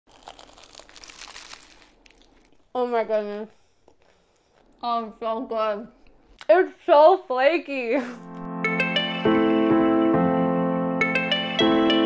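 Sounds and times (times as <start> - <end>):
pastry crackling and crunching: 0.1 - 2.6.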